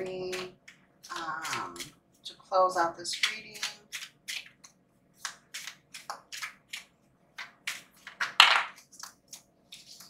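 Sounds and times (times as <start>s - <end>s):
cards shuffled by hand: 3.2s - 10.0s.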